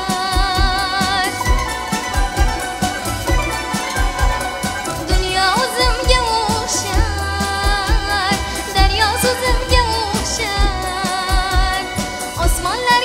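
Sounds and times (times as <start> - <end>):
regular low beat: 0.0 - 12.7
traditional instrument ensemble: 0.0 - 13.0
woman singing ornamented melody: 0.0 - 13.0.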